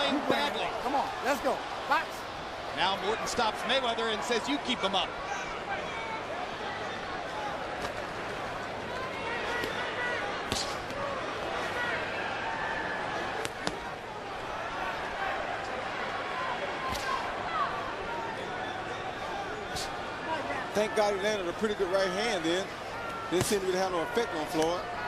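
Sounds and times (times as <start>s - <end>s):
crowd voices calling out: 0.0s - 25.0s.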